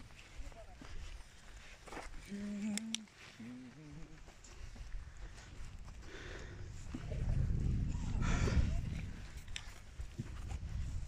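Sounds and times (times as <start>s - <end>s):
wind buffeting microphone: 4.8s - 11.0s.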